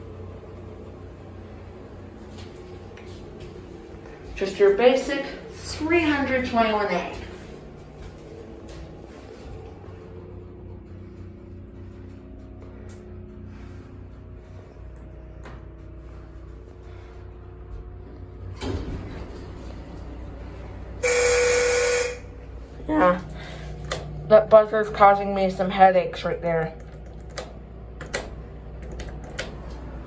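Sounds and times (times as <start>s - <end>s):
elevator hum: 0.0s - 30.0s
elevator buzzer: 21.0s - 22.5s.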